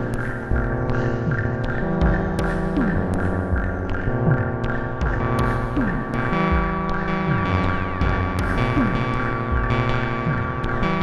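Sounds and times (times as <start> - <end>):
low throbbing pulses: 0.0 - 11.0
synthesizer drone: 0.0 - 11.0.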